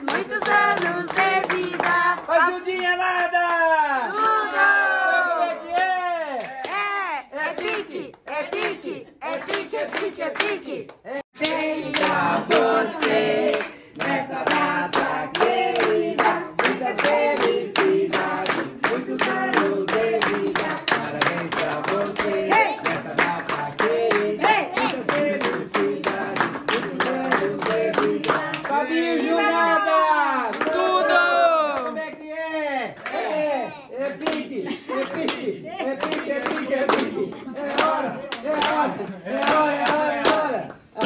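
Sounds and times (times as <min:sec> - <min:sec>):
group singing: 0:00.0 - 0:03.0, 0:04.1 - 0:06.0, 0:07.3 - 0:31.6, 0:33.0 - 0:41.0
rhythmic clapping: 0:00.0 - 0:04.7, 0:05.7 - 0:29.2, 0:29.8 - 0:41.0.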